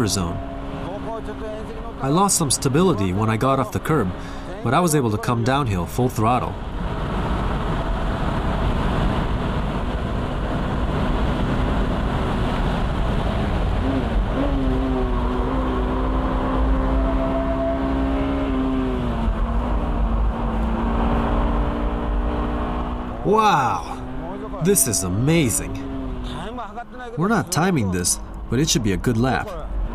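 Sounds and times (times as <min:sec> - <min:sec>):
car engine running hard: 0:00.0 - 0:29.9
wind and road noise: 0:00.0 - 0:29.9.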